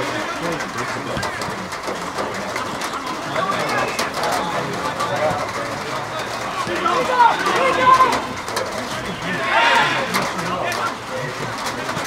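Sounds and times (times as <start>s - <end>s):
players shouting calls: 0.0s - 11.7s.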